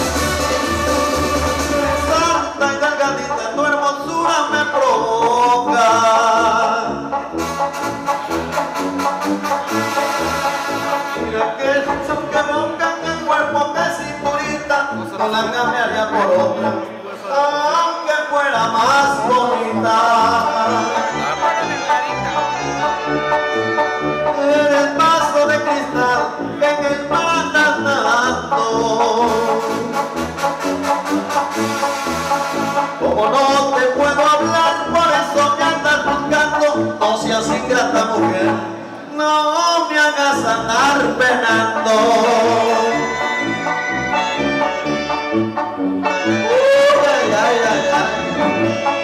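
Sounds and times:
instrumental backing track: 0:00.0 - 0:17.7, 0:18.6 - 0:39.1, 0:40.4 - 0:49.0.

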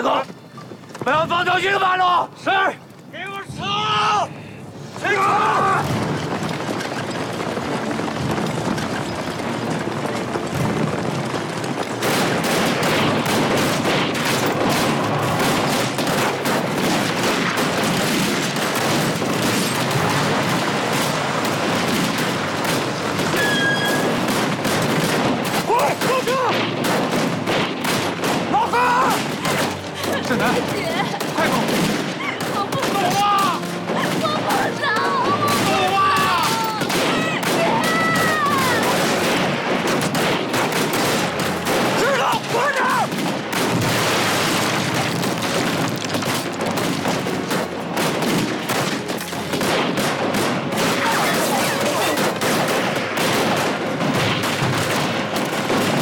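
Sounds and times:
men shouting: 0:05.0 - 0:05.9, 0:28.5 - 0:29.3
rifle and machine-gun fire: 0:05.1 - 0:56.0.

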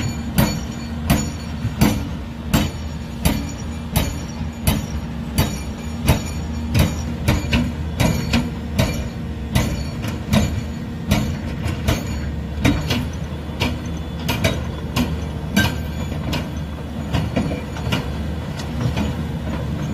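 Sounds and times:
excavator diesel engine drone: 0:00.0 - 0:19.9
hydraulic breaker hammering rock: 0:00.0 - 0:19.9.

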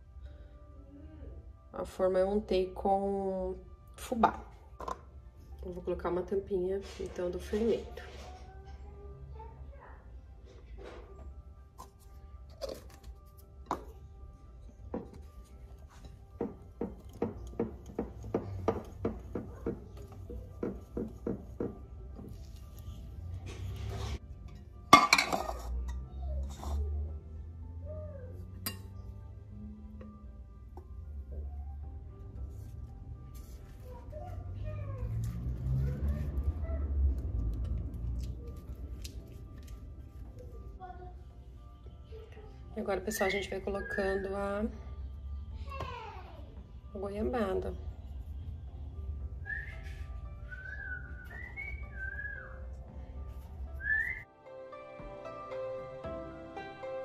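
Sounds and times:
faint background music: 0:00.0 - 0:57.0
metal pan clattering down: 0:24.9 - 0:25.7.

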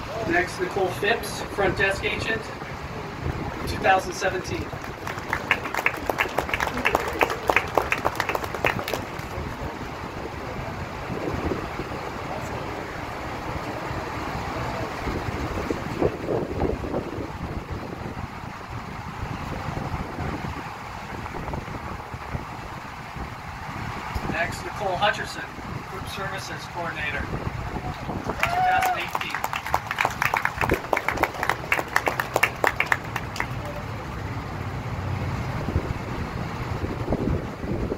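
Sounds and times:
crowd chatter: 0:02.4 - 0:16.1, 0:27.5 - 0:34.4
people clapping: 0:04.4 - 0:09.8, 0:27.8 - 0:34.1
wind noise on microphone: 0:10.4 - 0:12.6, 0:14.8 - 0:24.6, 0:27.2 - 0:29.0, 0:35.5 - 0:37.9.

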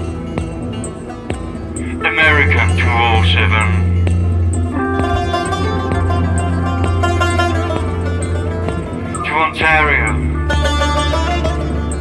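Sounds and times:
low bass drone: 0:00.0 - 0:12.0
plucked electric guitar: 0:00.0 - 0:12.0
plucked lute: 0:00.0 - 0:12.0.

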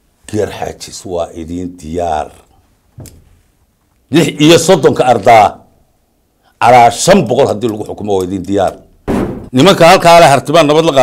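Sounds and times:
man talking: 0:00.2 - 0:02.6, 0:04.1 - 0:05.7, 0:06.6 - 0:08.9, 0:09.5 - 0:11.0.

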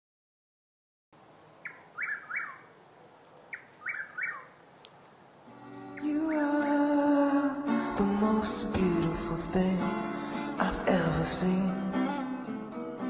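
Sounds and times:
bird chirping: 0:01.2 - 0:07.1
music: 0:05.6 - 0:13.0.

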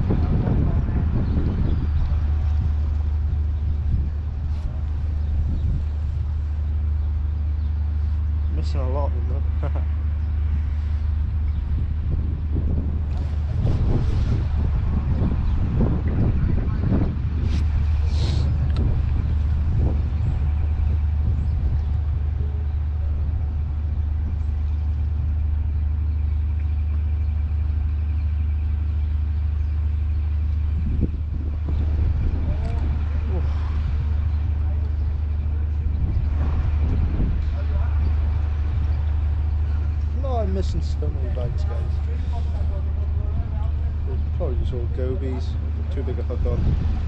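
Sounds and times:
wind buffeting microphone: 0:00.0 - 0:47.0
indistinct voices: 0:32.1 - 0:46.8.

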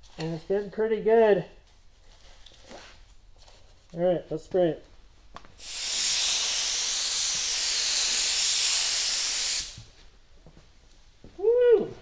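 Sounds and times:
paint spray gun hissing: 0:05.6 - 0:09.9.

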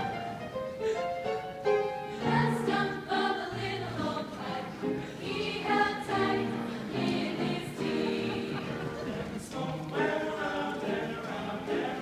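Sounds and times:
piano accompaniment: 0:00.0 - 0:12.0
choir singing: 0:02.1 - 0:12.0.

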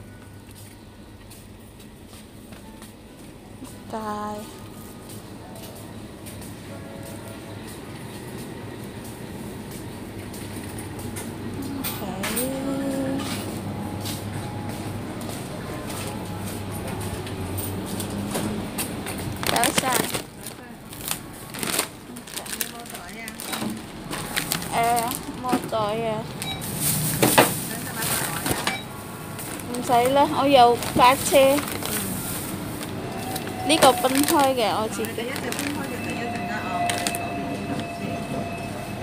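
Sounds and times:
checkout machine rumble and hum: 0:00.0 - 0:39.0
shopping trolley rattling: 0:17.0 - 0:37.7.

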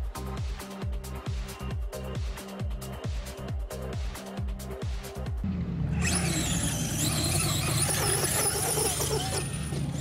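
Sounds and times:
toy car motor whining: 0:06.0 - 0:10.0.

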